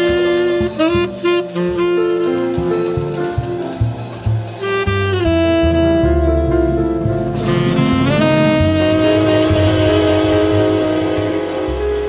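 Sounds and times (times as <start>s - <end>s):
tenor saxophone long notes: 0.0s - 3.0s, 4.6s - 12.0s
bass line: 0.0s - 12.0s
drums: 0.0s - 12.0s.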